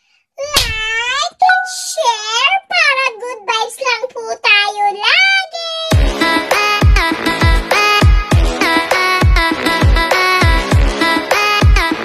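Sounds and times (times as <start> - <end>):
high-pitched voice singing wordlessly: 0.4 - 8.0.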